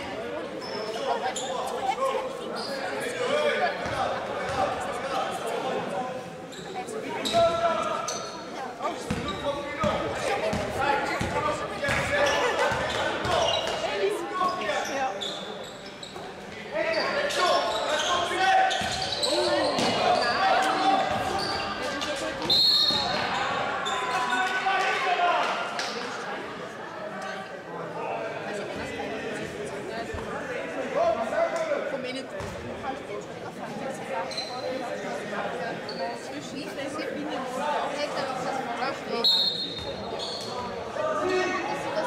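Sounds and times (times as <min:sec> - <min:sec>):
players shouting and chatting: 0:00.0 - 0:42.0
basketball bouncing on court: 0:09.0 - 0:12.1, 0:18.8 - 0:19.1.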